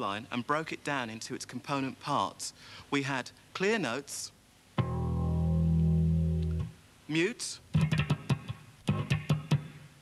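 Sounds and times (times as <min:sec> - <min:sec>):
muted electric bass notes: 0:04.8 - 0:06.8.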